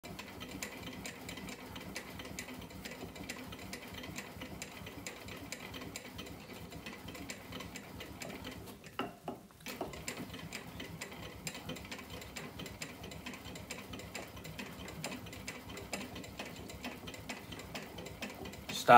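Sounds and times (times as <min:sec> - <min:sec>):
bat-rolling machine clicking: 0:00.0 - 0:18.9.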